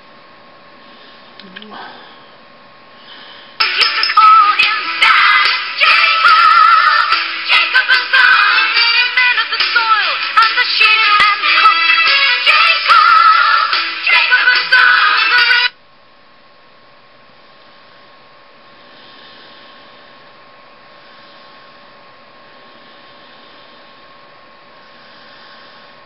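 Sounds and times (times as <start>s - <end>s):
song from a speaker: 3.6s - 15.8s.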